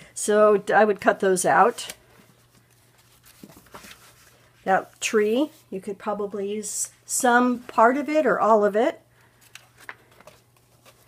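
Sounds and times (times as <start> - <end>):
magazine page turning: 1.7 - 4.6, 9.4 - 11.0.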